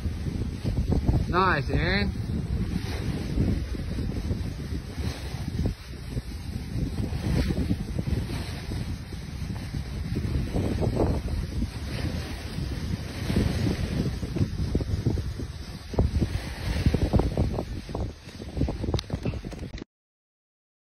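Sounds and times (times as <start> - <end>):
wind buffeting microphone: 0.0 - 19.8.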